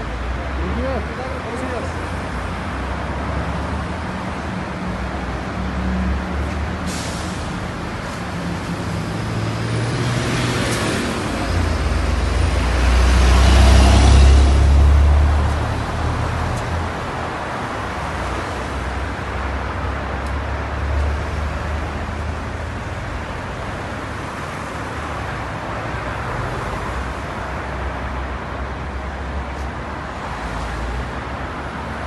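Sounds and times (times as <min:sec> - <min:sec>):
street traffic noise: 0:00.0 - 0:32.0
truck passing with deep rumble: 0:02.0 - 0:23.2.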